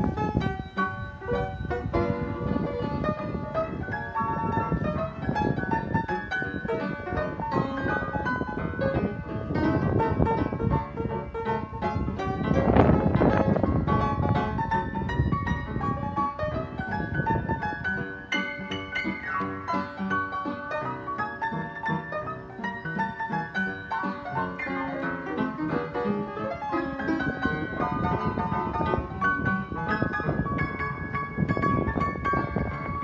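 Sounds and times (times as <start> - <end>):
upright piano playing: 0.0 - 33.0.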